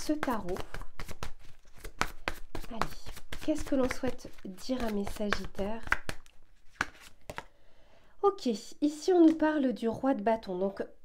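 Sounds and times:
cards being shuffled: 0.0 - 7.5.

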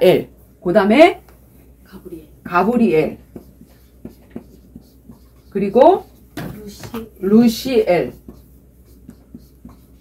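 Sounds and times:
chalk writing on chalkboard: 2.4 - 10.0.

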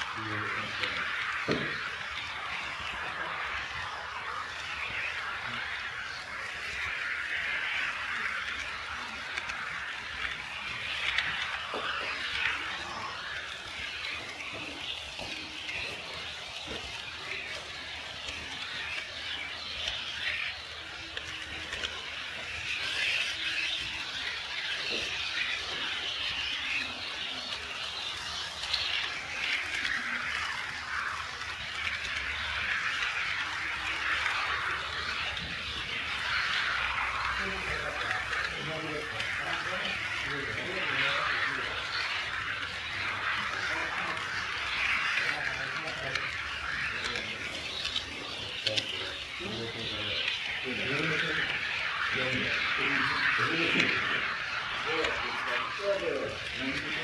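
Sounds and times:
model train wheels rolling on rails: 0.0 - 57.0.

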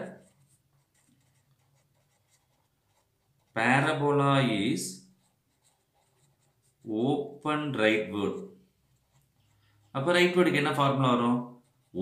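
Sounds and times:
marker scratching on paper: 0.0 - 4.0, 5.0 - 12.0
person speaking: 0.0 - 12.0.

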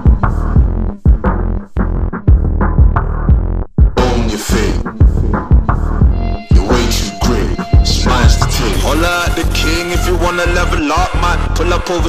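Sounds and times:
deep bass beat: 0.0 - 12.0
rapped vocal: 3.9 - 12.0.

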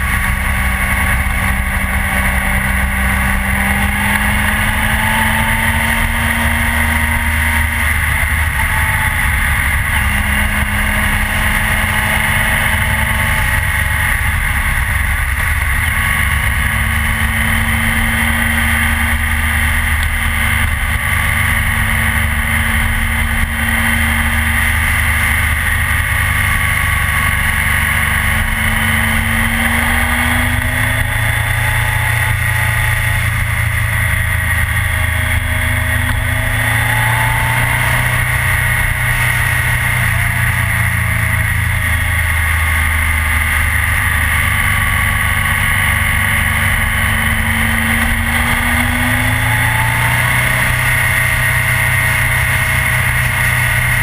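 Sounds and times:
motorcycle engine drone: 0.0 - 54.0.

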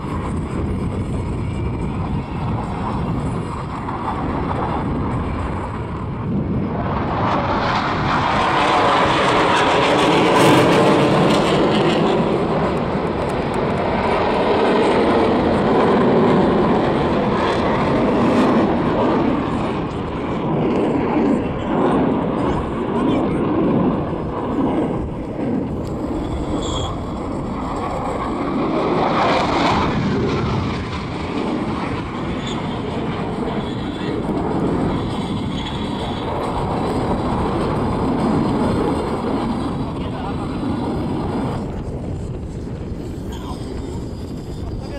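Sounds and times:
jet roar: 0.0 - 44.9
jet rumble: 0.0 - 44.9.

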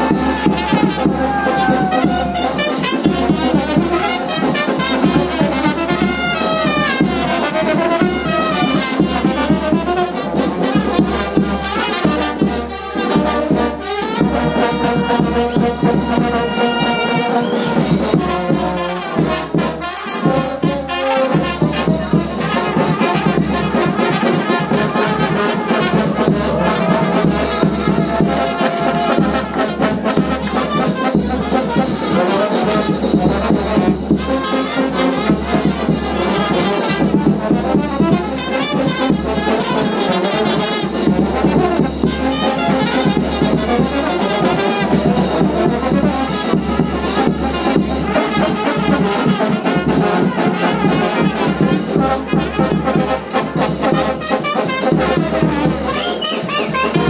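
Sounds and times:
bass drum: 0.0 - 39.9
brass band playing: 0.0 - 57.0.

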